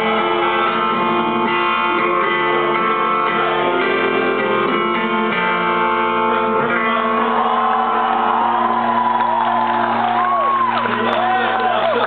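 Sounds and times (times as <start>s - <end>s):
electric guitar chord ringing: 0.0s - 9.2s
crowd shouting and whooping: 6.7s - 12.0s.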